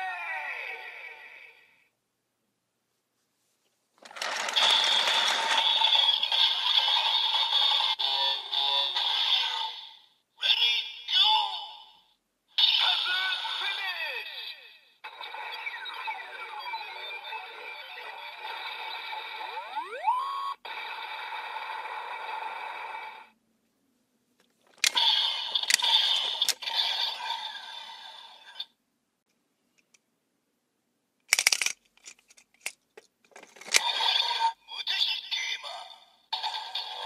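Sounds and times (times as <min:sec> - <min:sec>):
plastic clicks: 0:24.4 - 0:25.0, 0:25.6 - 0:26.6, 0:31.3 - 0:33.8.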